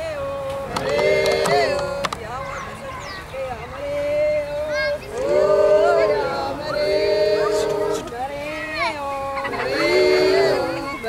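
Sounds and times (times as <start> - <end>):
group singing a chant: 0.0 - 2.4, 3.3 - 11.0.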